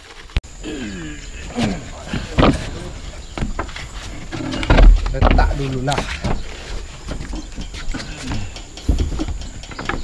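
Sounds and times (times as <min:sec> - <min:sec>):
man groaning: 0:00.6 - 0:02.2.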